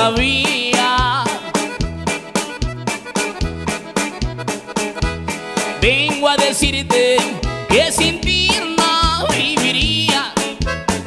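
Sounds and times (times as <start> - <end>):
button accordion melody: 0.0 - 11.0
congas: 0.0 - 11.0
electric bass: 0.0 - 11.0.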